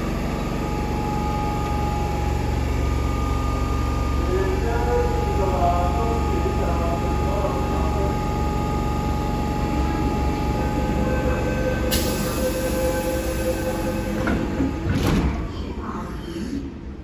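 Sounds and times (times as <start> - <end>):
train equipment humming: 0.0 - 17.0.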